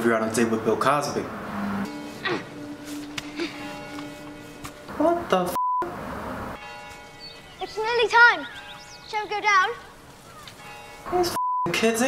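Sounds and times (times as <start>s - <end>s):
held bell-like chord: 1.9s - 5.4s.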